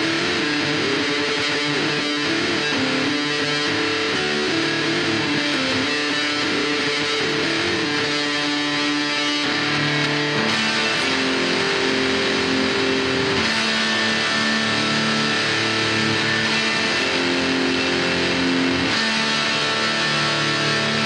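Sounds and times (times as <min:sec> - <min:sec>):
distorted electric guitar riff: 0:00.0 - 0:21.0.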